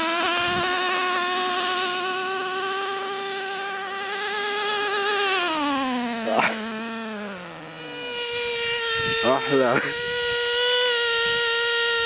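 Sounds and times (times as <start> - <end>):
small two-stroke engine buzzing: 0.0 - 12.0.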